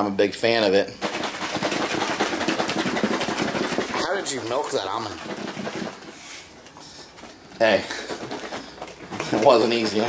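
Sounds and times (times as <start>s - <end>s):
liquid sloshing in shaken carton: 1.0s - 6.2s.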